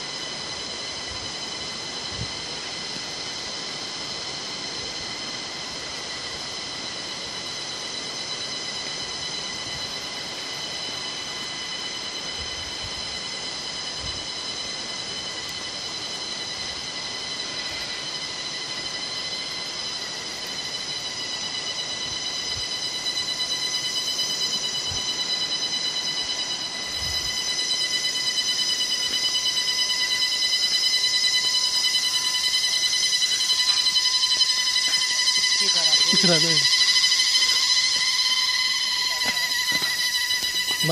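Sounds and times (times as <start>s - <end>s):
shrill insect chorus: 0.0s - 40.9s
high-pitched buzz: 8.8s - 40.9s.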